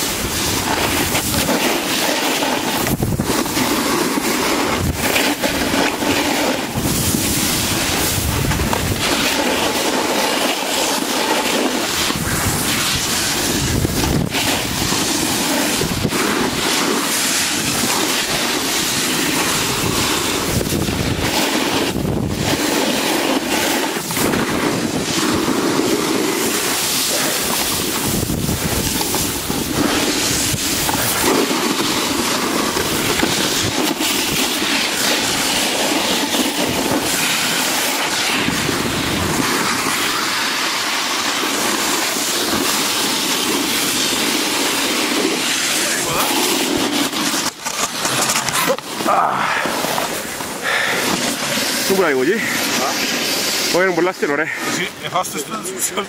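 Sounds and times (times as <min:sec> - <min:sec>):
wind buffeting microphone: 0:00.0 - 0:09.8, 0:11.8 - 0:40.5
sliding over packed snow: 0:00.0 - 0:56.0.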